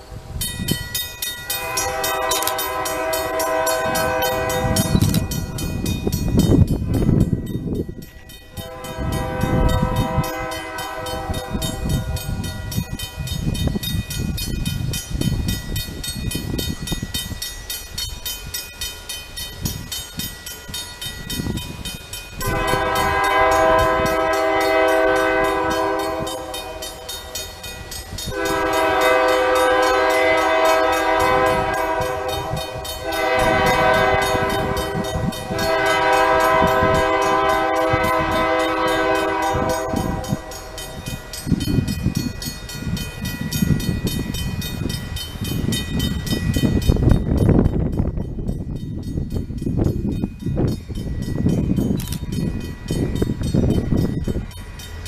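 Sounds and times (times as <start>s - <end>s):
wind rumble on microphone: 0.0s - 18.6s, 19.4s - 26.6s, 27.8s - 54.8s
locomotive air horn blasts: 1.6s - 5.3s, 8.5s - 12.4s, 22.4s - 27.3s, 28.3s - 40.8s.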